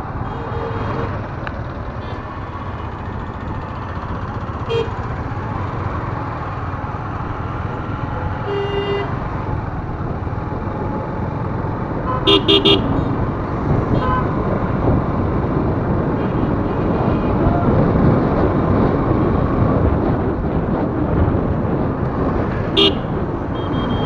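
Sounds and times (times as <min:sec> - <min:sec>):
road traffic rumble: 0:00.0 - 0:24.0
car horns tooting: 0:04.6 - 0:05.0, 0:08.4 - 0:09.2, 0:12.0 - 0:13.2, 0:22.8 - 0:24.0.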